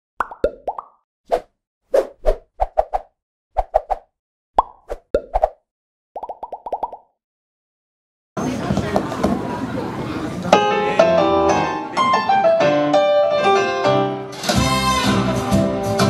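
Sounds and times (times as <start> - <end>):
cartoon pops: 4.6 - 5.6.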